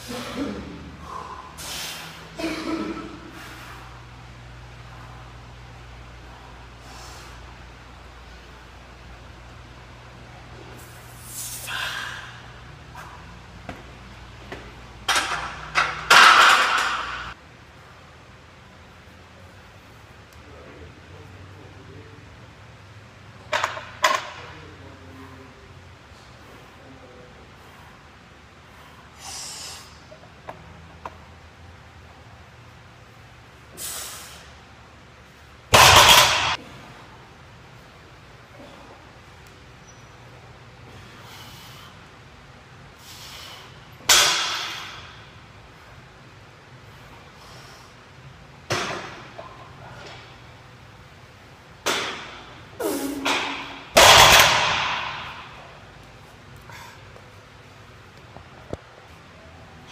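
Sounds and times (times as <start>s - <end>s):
sharp hissing breath: 1.0s - 2.3s, 6.7s - 7.6s, 10.8s - 13.2s, 28.7s - 30.1s, 33.7s - 34.6s, 40.9s - 42.0s, 43.0s - 43.9s
barbell plates crashing on floor: 15.1s - 17.3s, 35.7s - 36.6s, 53.2s - 55.5s.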